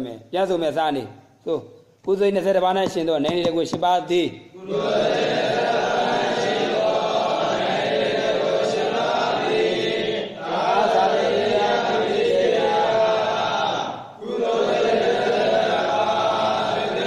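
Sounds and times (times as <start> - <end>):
voices chanting together: 4.6 - 17.0.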